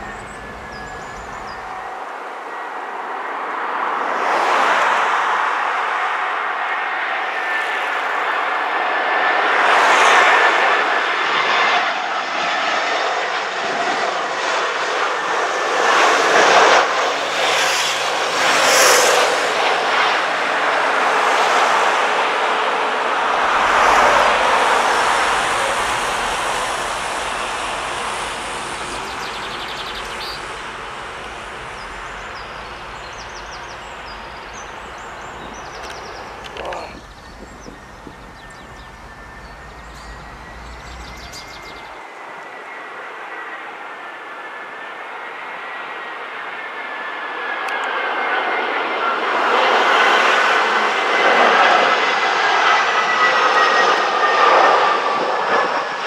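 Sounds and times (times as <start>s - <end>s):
jet airliner landing: 0.0s - 56.0s.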